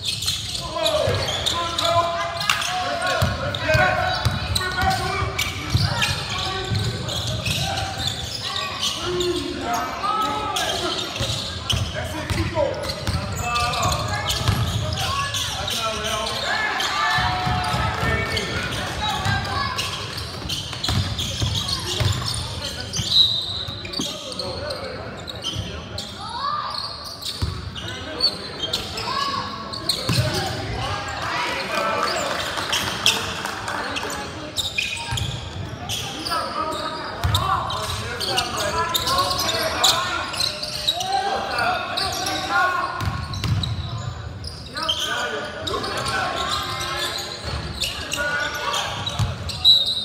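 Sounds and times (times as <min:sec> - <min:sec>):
people shouting and talking: 0:00.0 - 0:50.0.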